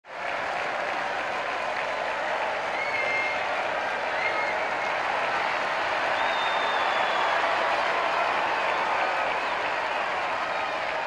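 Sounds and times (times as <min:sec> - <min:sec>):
crowd applauding: 0:00.0 - 0:11.0
whistle from crowd: 0:06.1 - 0:07.5.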